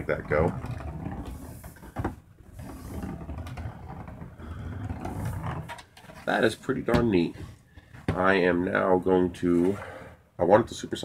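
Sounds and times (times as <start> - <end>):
plastic object rolling on tabletop: 0.0 - 8.3.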